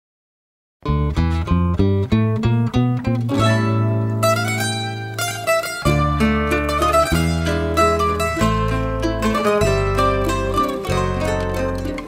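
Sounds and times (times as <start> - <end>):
plucked acoustic strings: 0.8 - 12.0.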